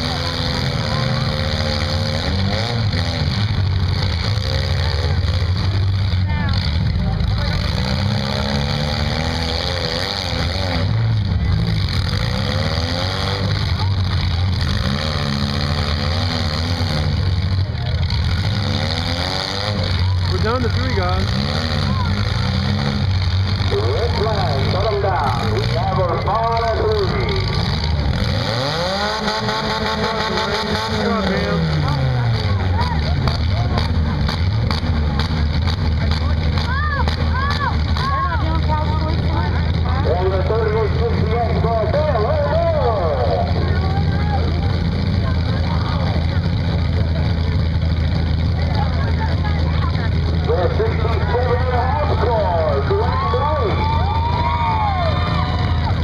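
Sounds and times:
car engine revving: 0:00.0 - 0:56.0
car engines running: 0:00.0 - 0:56.0
indistinct voices: 0:00.0 - 0:56.0.

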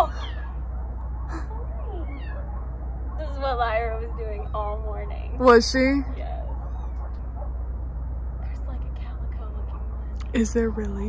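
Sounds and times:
kittens mewing: 0:00.0 - 0:00.6, 0:01.3 - 0:02.5
low hum: 0:00.0 - 0:11.0.

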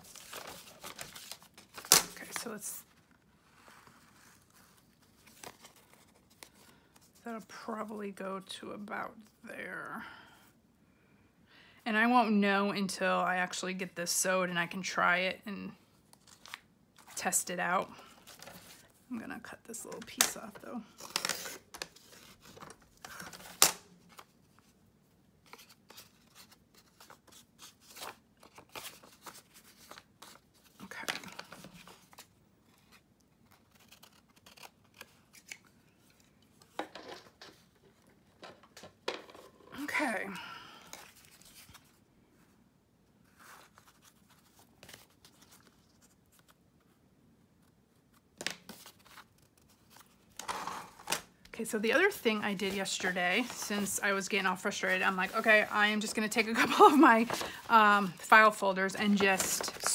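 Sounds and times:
paper rustling: 0:00.0 - 0:07.2, 0:25.4 - 0:38.9, 0:40.9 - 0:42.0, 0:43.2 - 0:47.0, 0:47.6 - 0:51.2, 0:52.0 - 0:59.9.

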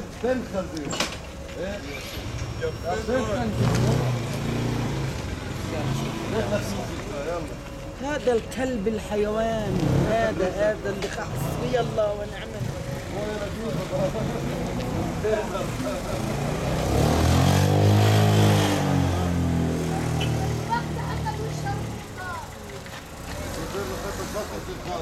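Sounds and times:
voices in the street: 0:00.0 - 0:25.0.

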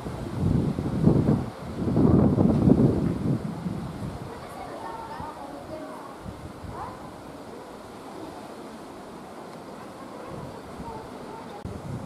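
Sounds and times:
wind buffeting microphone: 0:00.0 - 0:08.7, 0:09.6 - 0:12.0.

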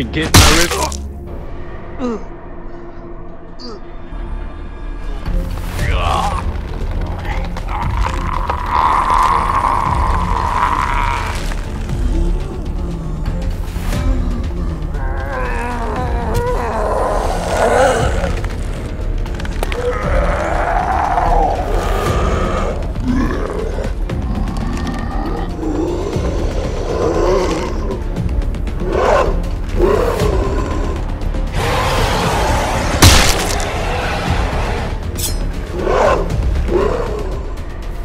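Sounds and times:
background music with low drone: 0:00.0 - 0:38.0
monster growling and roaring: 0:07.2 - 0:12.7, 0:14.7 - 0:18.9, 0:19.6 - 0:28.2, 0:28.8 - 0:35.0.

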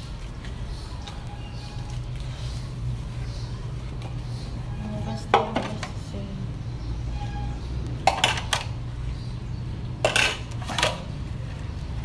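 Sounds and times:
plates clattering and clinking: 0:08.1 - 0:08.7, 0:10.0 - 0:11.0.

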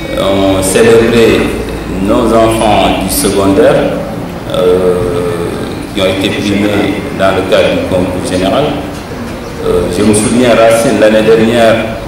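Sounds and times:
man speaking with hesitation: 0:00.0 - 0:09.0, 0:09.6 - 0:12.0.

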